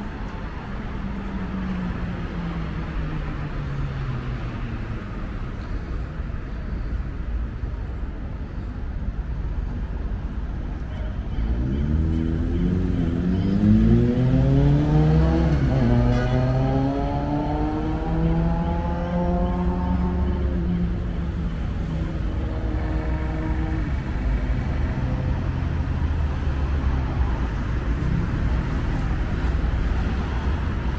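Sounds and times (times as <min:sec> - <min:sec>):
rumble of passing cars: 0:00.0 - 0:30.9
vehicle engine accelerating: 0:11.6 - 0:20.3.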